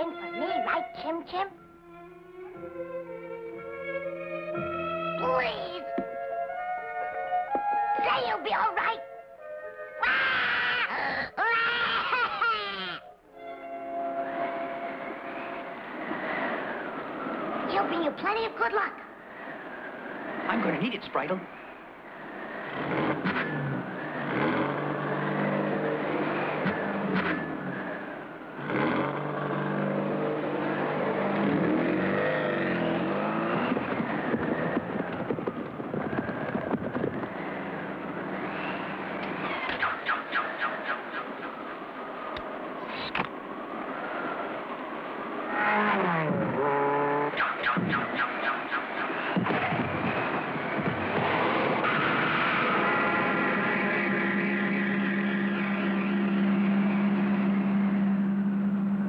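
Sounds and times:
tyres skidding: 0:00.0 - 0:59.0
cartoon race car engine: 0:22.2 - 0:41.9, 0:45.3 - 0:59.0.

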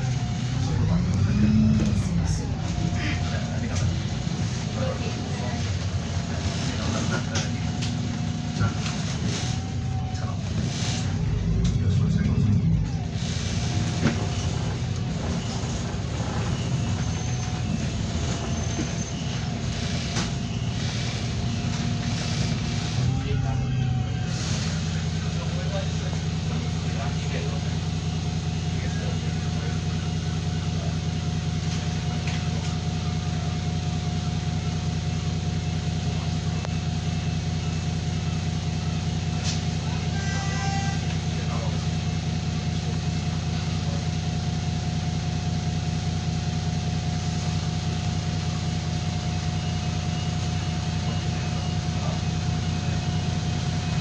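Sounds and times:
bus engine labouring and idling: 0:00.0 - 0:54.0.

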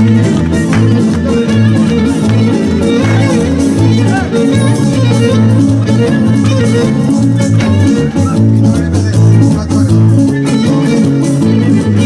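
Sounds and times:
bowed string melody: 0:00.0 - 0:12.0
electric bass: 0:00.0 - 0:12.0
plucked strings rhythm: 0:00.0 - 0:12.0.

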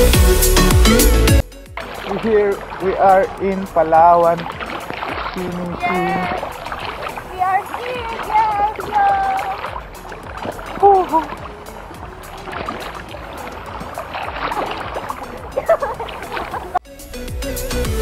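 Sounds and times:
sea water sloshing and splashing: 0:01.6 - 0:16.8
voices calling out: 0:01.8 - 0:16.8.

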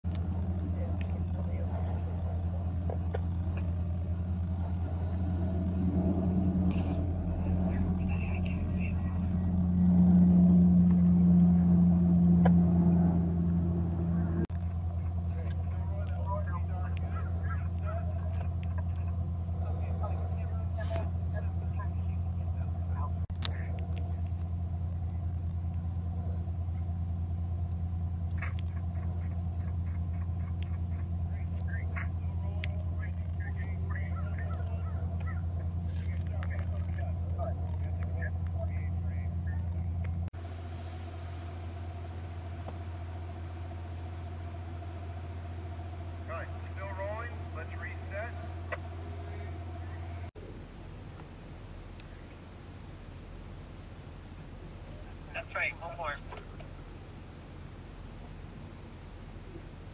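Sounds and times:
low drone: 0:00.0 - 0:59.9
steady low rumble: 0:00.0 - 0:59.9
faint distant voices: 0:00.2 - 0:12.0, 0:14.2 - 0:25.4, 0:28.8 - 0:40.0, 0:41.7 - 0:51.0.

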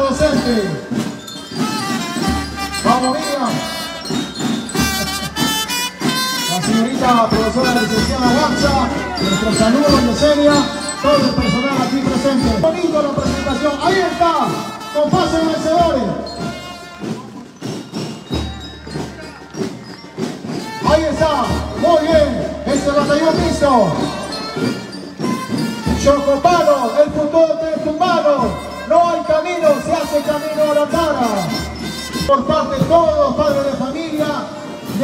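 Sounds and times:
band with wind instruments: 0:00.0 - 0:35.0
drum beats: 0:00.0 - 0:35.0.

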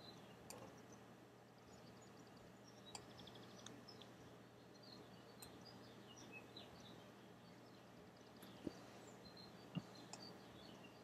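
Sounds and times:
faint room hiss and hum: 0:00.0 - 0:11.0.

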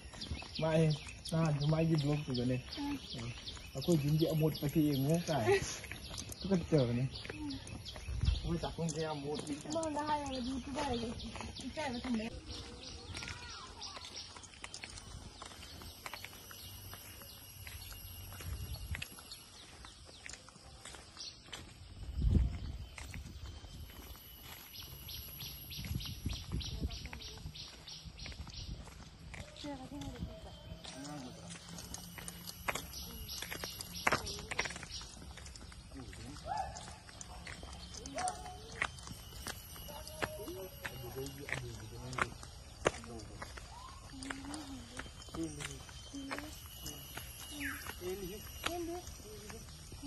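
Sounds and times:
footsteps on leafy dirt path: 0:00.0 - 0:50.0.

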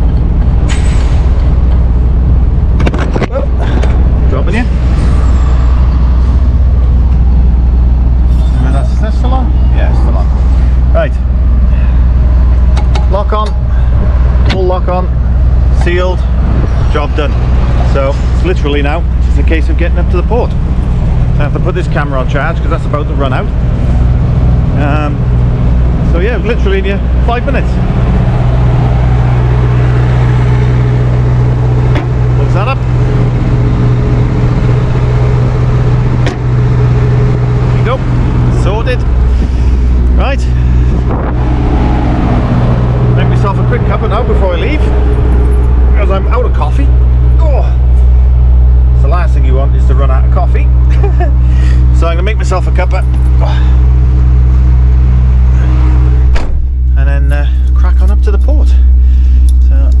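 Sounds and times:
diesel engine idling: 0:00.0 - 1:00.0
thud: 0:56.2 - 0:56.7.

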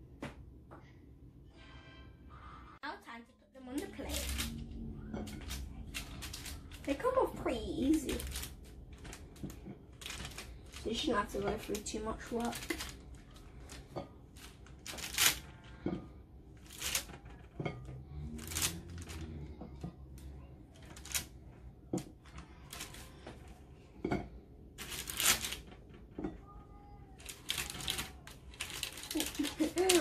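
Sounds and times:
baking paper crinkling: 0:03.7 - 0:16.0, 0:16.6 - 0:24.2, 0:24.8 - 0:30.0.

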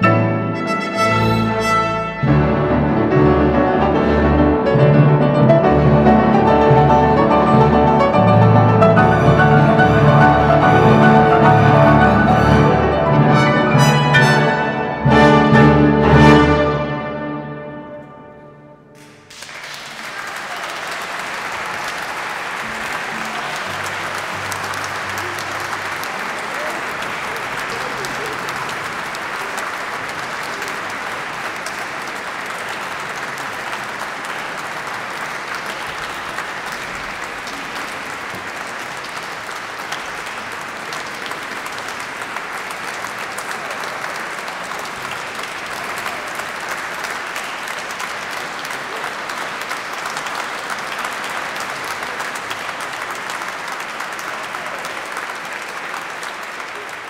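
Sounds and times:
audience applauding: 0:00.6 - 0:18.0, 0:18.9 - 0:57.0.

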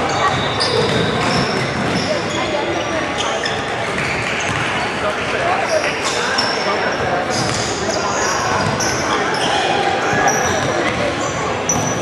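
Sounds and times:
crowd and player chatter: 0:00.0 - 0:12.0
sneakers squeaking: 0:00.0 - 0:12.0
basketball bouncing: 0:00.3 - 0:02.0, 0:03.9 - 0:04.8.

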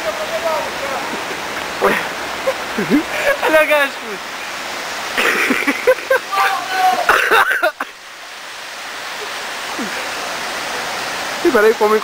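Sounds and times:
running water rushing: 0:00.0 - 0:12.0
person calling out: 0:06.3 - 0:07.2.

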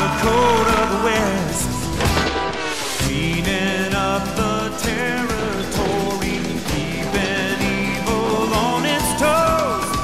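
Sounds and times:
country western theme song: 0:00.0 - 0:10.0.

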